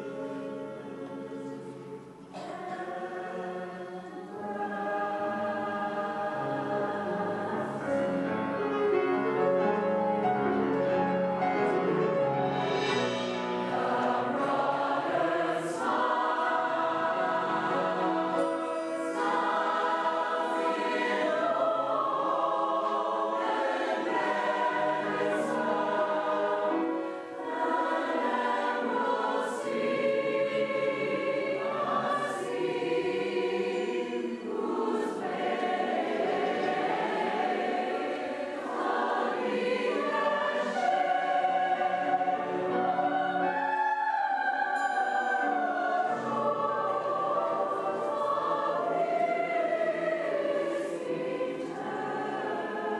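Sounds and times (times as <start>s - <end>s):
mixed choir singing: 0.0s - 52.9s.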